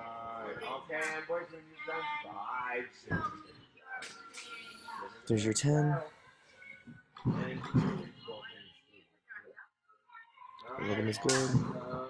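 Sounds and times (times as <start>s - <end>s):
indistinct background voices: 0.0s - 12.0s.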